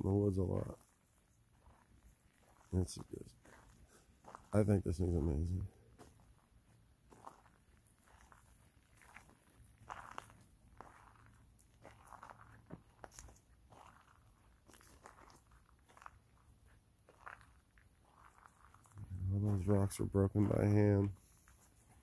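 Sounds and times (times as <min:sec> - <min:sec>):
footsteps crunching dry leaves: 0:00.1 - 0:22.0.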